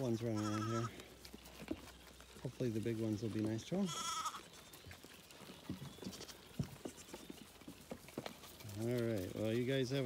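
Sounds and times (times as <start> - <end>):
faint rustles: 0.0 - 10.0
lamb bleating: 0.2 - 1.1, 3.8 - 4.6, 6.0 - 7.2.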